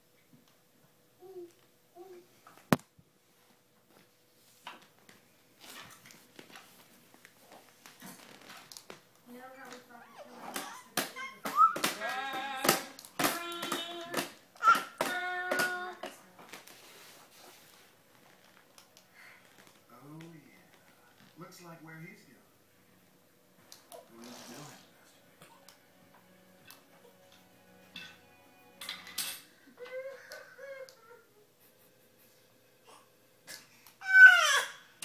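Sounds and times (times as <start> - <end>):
baby babbling: 1.2 - 2.3, 10.0 - 16.1, 32.9 - 34.9.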